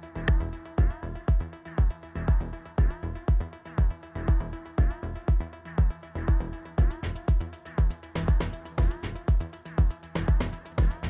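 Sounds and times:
four-on-the-floor kick drum: 0.2s - 11.0s.

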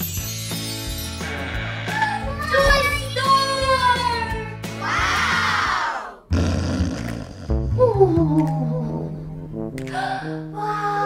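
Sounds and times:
loud low rasping snore: 6.3s - 7.8s.

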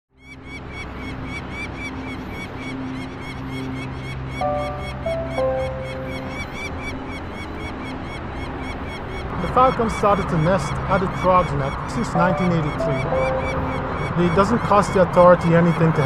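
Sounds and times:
falcon alarm call: 0.5s - 16.0s.

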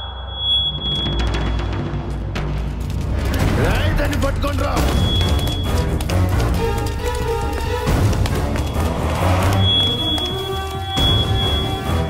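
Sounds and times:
dramatic film score with low pulse: 0.0s - 12.0s.

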